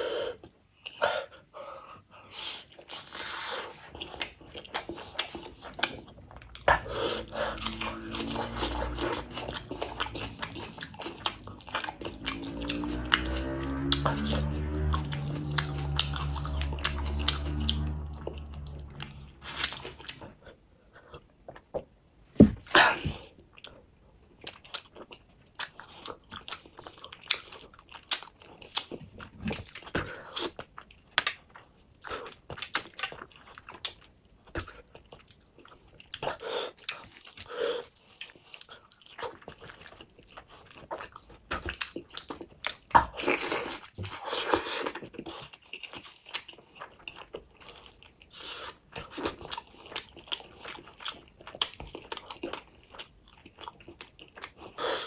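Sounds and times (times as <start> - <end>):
low steady hum: 0.0 - 37.4
wet chewing and smacking: 2.7 - 20.4, 23.5 - 55.0.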